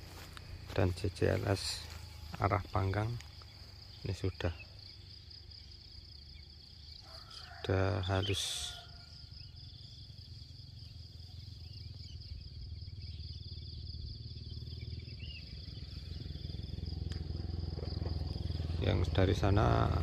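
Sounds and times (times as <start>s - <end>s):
high-pitched insect drone: 0.0s - 20.0s
pulsing insect trill: 0.0s - 20.0s.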